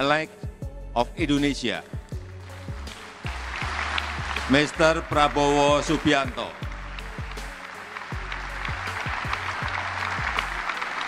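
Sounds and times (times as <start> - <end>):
background music with low beat: 0.0 - 11.0
audience applauding: 2.4 - 11.0.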